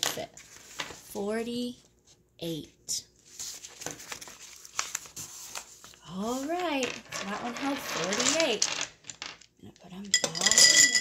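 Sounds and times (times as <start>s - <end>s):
paper rustling: 0.4s - 1.0s, 3.2s - 6.7s.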